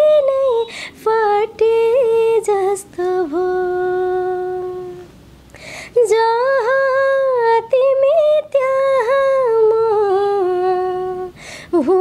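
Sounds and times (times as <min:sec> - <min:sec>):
woman singing unaccompanied: 0:00.0 - 0:05.1, 0:05.9 - 0:12.0
woman breathing in: 0:00.7 - 0:01.0, 0:05.5 - 0:06.0, 0:11.4 - 0:11.7.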